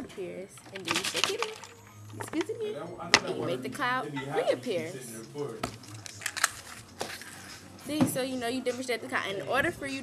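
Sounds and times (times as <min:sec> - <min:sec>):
plastic bottle crackling: 0:00.6 - 0:02.4.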